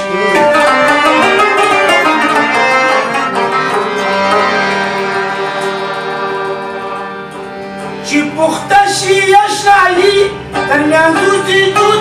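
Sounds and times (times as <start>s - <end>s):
harmonium chords: 0.0s - 12.0s.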